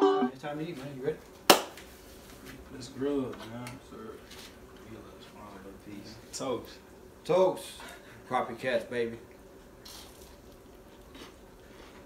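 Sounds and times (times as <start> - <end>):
sharp hand clap: 1.5 - 1.8.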